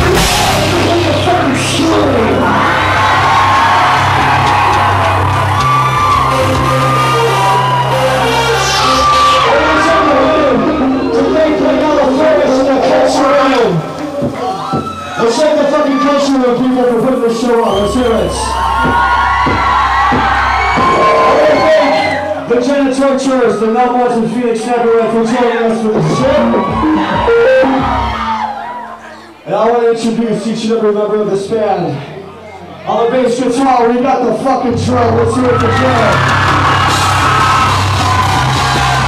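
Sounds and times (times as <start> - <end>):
sustained synth and bass tones: 0.0 - 23.2, 25.8 - 29.4, 32.0 - 39.0
crowd whooping and cheering: 0.0 - 29.4, 34.7 - 39.0.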